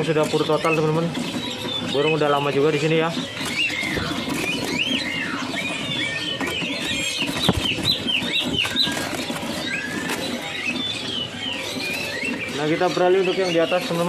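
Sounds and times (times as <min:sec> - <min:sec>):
caged birds chirping and whistling: 0:00.0 - 0:14.0.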